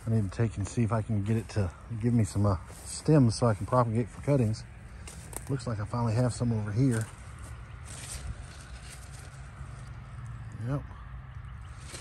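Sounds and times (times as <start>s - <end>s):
man speaking: 0.0s - 4.7s, 5.4s - 7.1s
faint rustles: 0.0s - 10.5s, 11.6s - 12.0s
low outdoor rumble: 0.0s - 12.0s.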